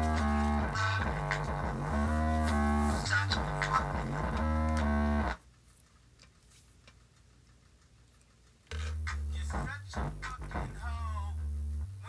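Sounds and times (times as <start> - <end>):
music with heavy bass line: 0.0 - 5.4, 8.8 - 12.0.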